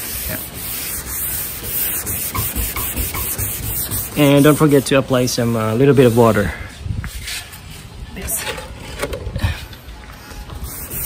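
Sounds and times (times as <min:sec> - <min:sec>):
sandpaper rubbing painted metal: 0:00.0 - 0:07.8, 0:10.3 - 0:11.0.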